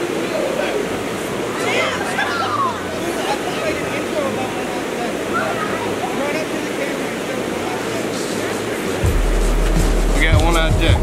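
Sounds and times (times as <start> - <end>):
creek rapids rushing: 0.0 - 11.0
distant voices: 0.0 - 11.0.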